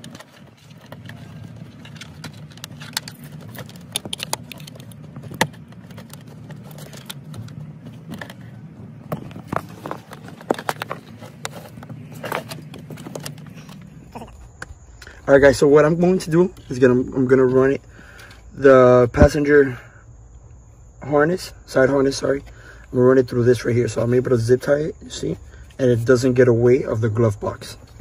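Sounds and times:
clicks and rustles of wiring: 0.0s - 19.3s
steady low hum: 0.0s - 28.0s.

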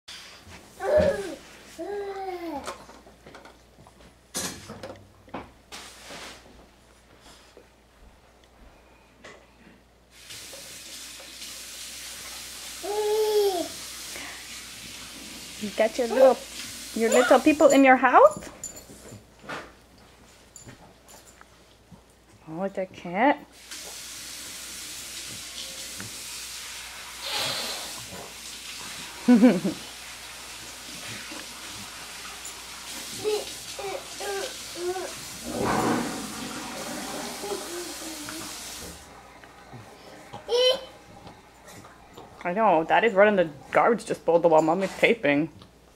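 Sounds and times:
toddler babbling: 0.8s - 2.7s, 12.8s - 13.8s, 16.1s - 16.4s, 17.0s - 17.4s, 33.2s - 35.2s, 37.4s - 38.5s, 40.4s - 41.0s
water running: 10.1s - 18.4s, 23.5s - 45.7s
steady hiss: 23.5s - 40.7s
loud noisy burst: 35.4s - 37.8s.

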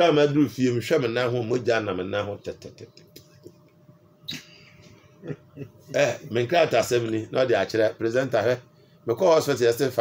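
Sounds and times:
man talking: 0.0s - 3.2s, 5.9s - 10.0s
man chuckling: 4.3s - 6.5s.

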